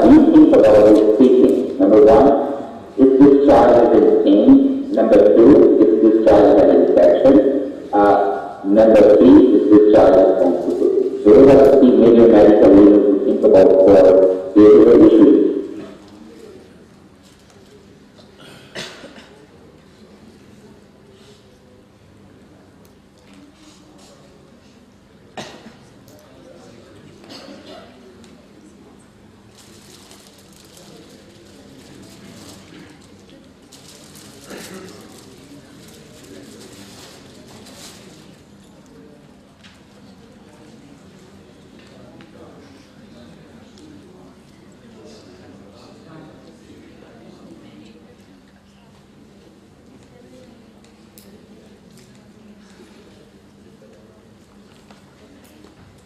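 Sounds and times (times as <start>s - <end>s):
man's muffled voice over loudspeakers: 0.0s - 16.8s, 34.1s - 37.9s
low room noise: 0.0s - 56.0s.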